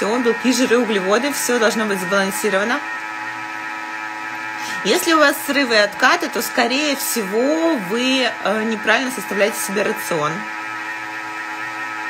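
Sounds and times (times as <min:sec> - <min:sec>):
woman speaking: 0:00.0 - 0:02.9, 0:04.6 - 0:10.5
electric mixer humming: 0:00.0 - 0:12.0.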